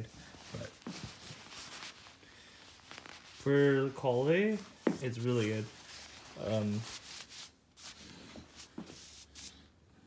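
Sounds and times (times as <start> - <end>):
fabric rustling: 0.0 - 9.7.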